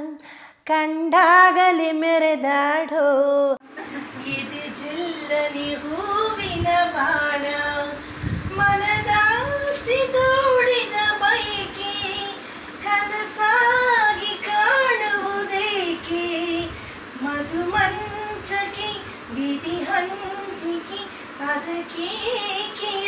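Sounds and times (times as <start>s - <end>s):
man singing unaccompanied: 4.1s - 7.9s.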